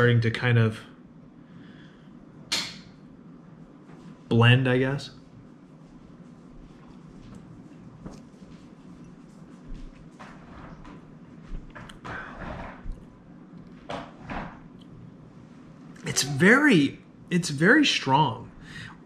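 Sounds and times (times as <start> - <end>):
soft breaths out: 1.4 - 2.3, 12.0 - 12.8, 18.6 - 19.0.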